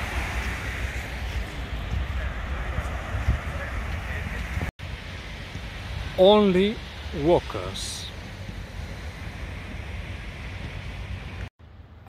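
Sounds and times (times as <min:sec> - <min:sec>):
sea surf: 0:00.0 - 0:11.5
wind: 0:00.0 - 0:12.0
wind rumbling on microphone: 0:00.0 - 0:12.0.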